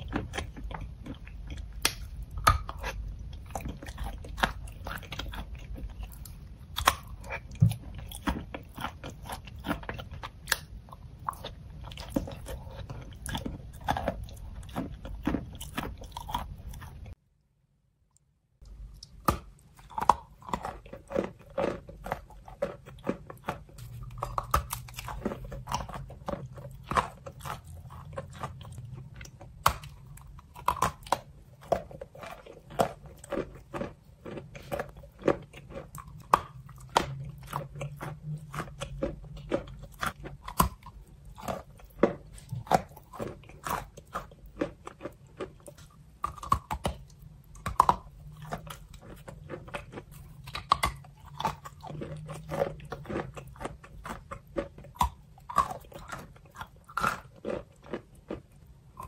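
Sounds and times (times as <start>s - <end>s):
chewing chalk crunches: 0.0s - 17.2s, 18.6s - 59.0s.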